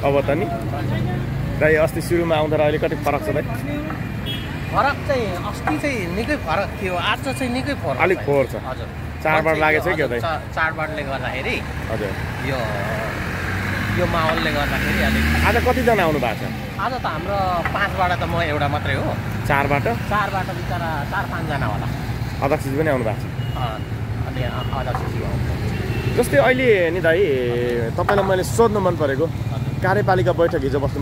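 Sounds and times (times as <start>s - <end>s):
man talking: 0.0s - 4.0s, 4.7s - 25.5s, 26.2s - 31.0s
street traffic: 0.0s - 31.0s
vehicle passing close by: 11.6s - 22.2s.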